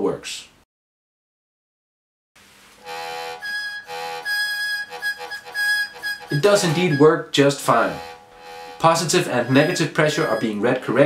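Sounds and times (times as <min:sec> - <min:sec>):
synthesizer sustained notes: 0:02.9 - 0:10.4.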